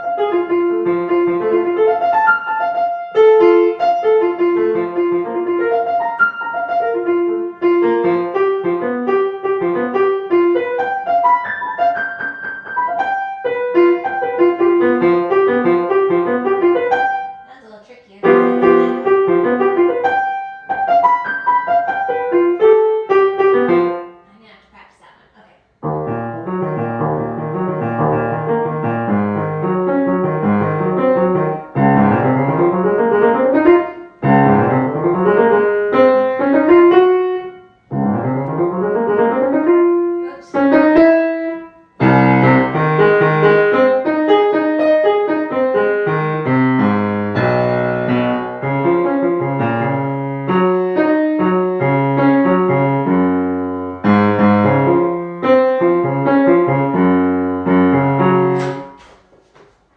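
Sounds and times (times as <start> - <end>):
piano practice: 0.0 - 25.1, 25.7 - 59.9.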